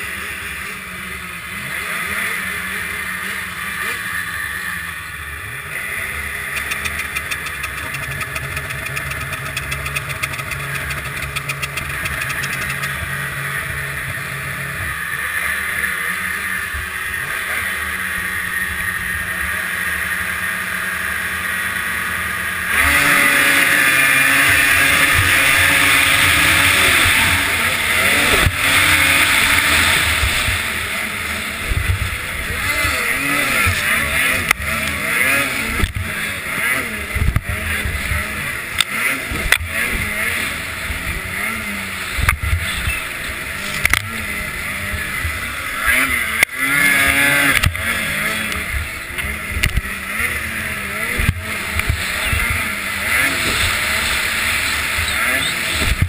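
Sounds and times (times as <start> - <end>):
nearby snowmobile at high revs: 0.0 - 56.0
snowmobile engines revving: 0.0 - 56.0.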